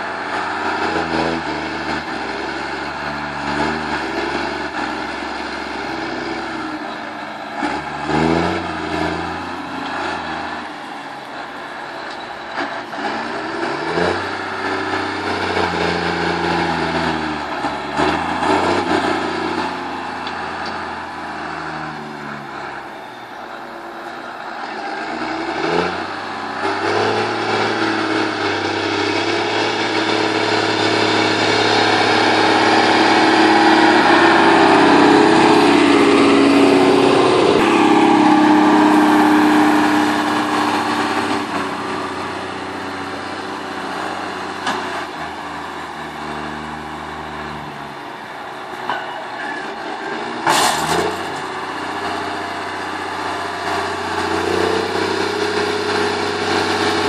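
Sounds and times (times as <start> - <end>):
tractor engine working under load: 0.0 - 57.0.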